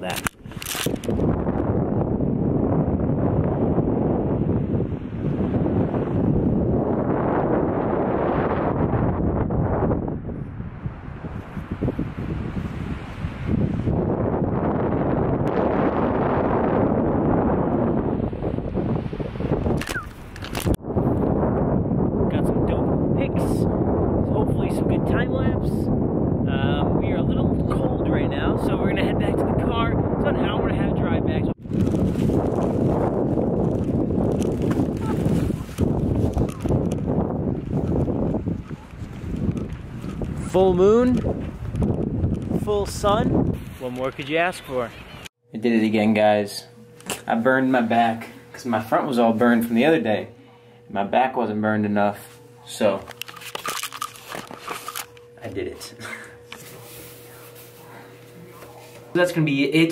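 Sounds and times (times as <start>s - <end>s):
wind buffeting microphone: 0.0s - 45.4s.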